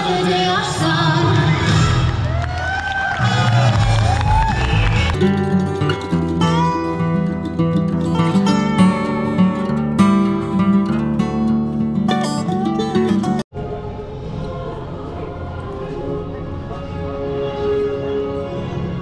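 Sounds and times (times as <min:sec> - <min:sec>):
plucked acoustic guitar music: 0:05.1 - 0:13.4
song with singing: 0:13.6 - 0:17.6.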